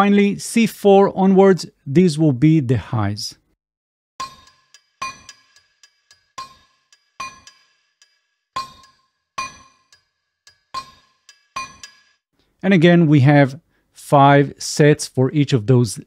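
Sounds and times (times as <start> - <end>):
ringing metallic hits: 4.2 - 12.2.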